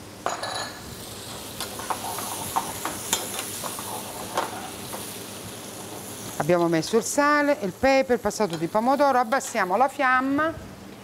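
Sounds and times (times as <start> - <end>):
food sizzling in a frying pan: 0.3 - 10.3.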